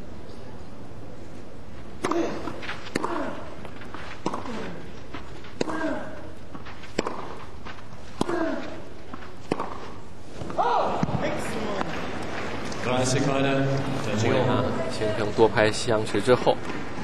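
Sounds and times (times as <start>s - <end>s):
racquet striking tennis ball: 2.0s - 12.8s.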